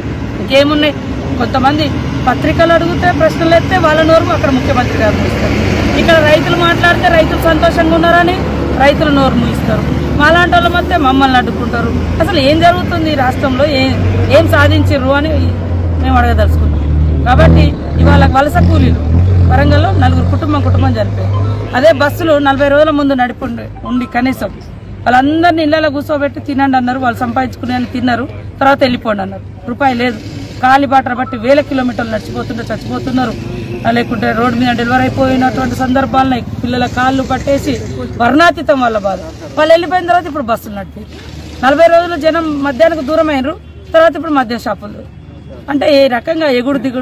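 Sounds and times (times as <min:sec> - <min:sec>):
woman speaking: 0:00.5 - 0:16.6, 0:19.6 - 0:44.9.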